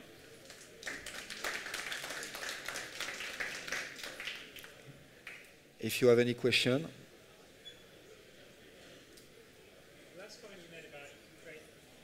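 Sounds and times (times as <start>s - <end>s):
audience applause: 0.5s - 4.8s.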